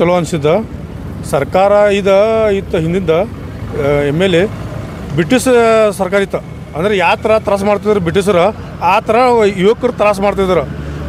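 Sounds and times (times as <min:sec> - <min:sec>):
man speaking into microphone: 0:00.0 - 0:10.8.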